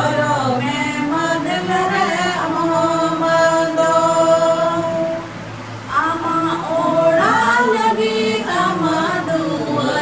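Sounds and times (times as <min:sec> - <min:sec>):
group singing unaccompanied: 0:00.0 - 0:10.0.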